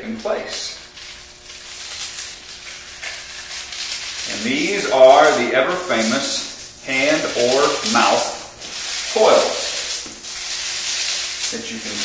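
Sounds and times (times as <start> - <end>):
paper coil rustling: 0.0 - 12.0.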